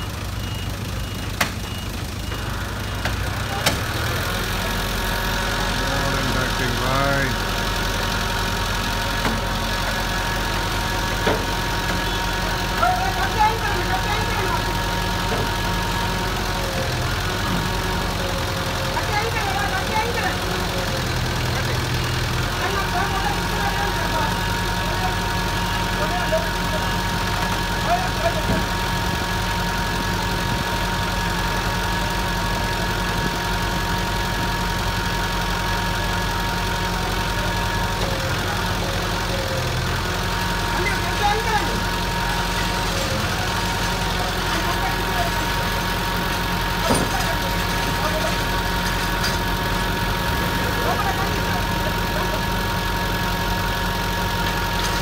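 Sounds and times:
truck engine idling: 0.0 - 55.0
voices talking: 0.0 - 55.0.

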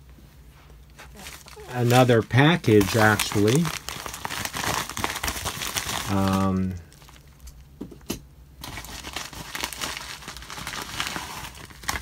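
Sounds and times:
packaging crinkling: 1.0 - 7.6, 8.6 - 12.0.

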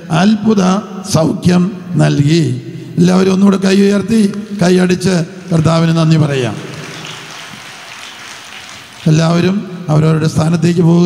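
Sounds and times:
person preaching: 0.0 - 6.9, 9.0 - 11.0
large crowd clapping: 5.4 - 9.6.

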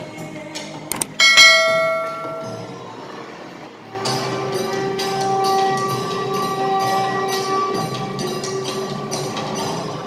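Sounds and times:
bell ringing: 1.2 - 2.8.

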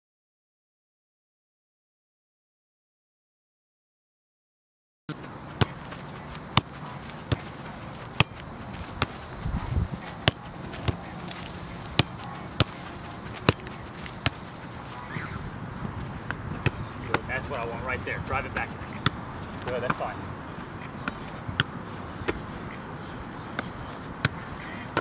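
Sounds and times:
steady outdoor noise: 5.1 - 25.0
ball thudding on boot and gloves: 5.6 - 14.9.

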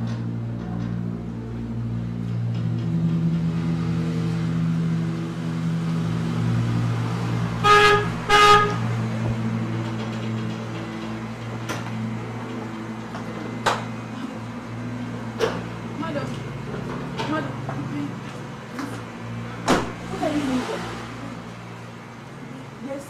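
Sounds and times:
steady low drone: 0.0 - 23.0
car horn short blasts: 7.6 - 8.8.

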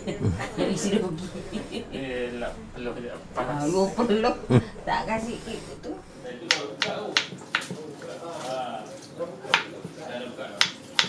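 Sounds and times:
knife chopping on wooden board: 6.5 - 7.8.

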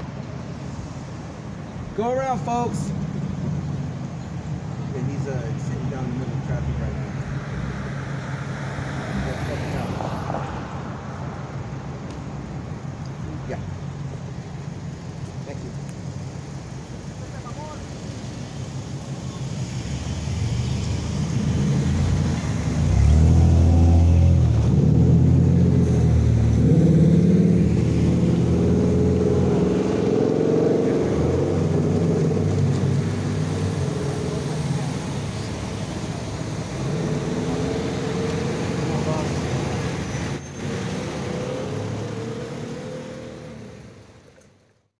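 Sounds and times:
cars driving past: 0.0 - 44.8.

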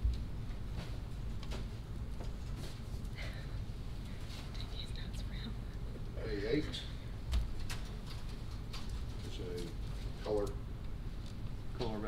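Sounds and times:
meeting room hum: 0.0 - 12.0.

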